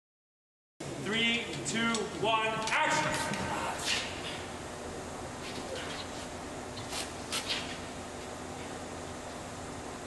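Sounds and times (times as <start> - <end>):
person calling out: 2.2 - 4.0.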